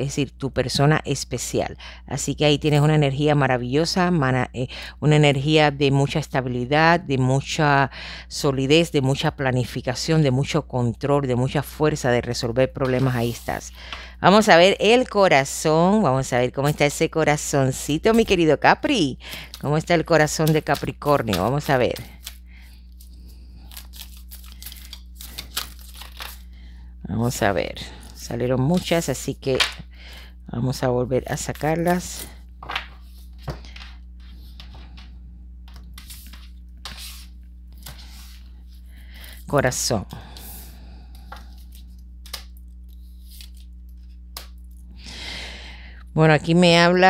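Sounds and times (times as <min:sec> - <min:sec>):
low hum: 0:11.2 - 0:46.6
cards being shuffled: 0:12.8 - 0:14.0, 0:19.3 - 0:26.5, 0:31.2 - 0:39.4, 0:41.2 - 0:44.7.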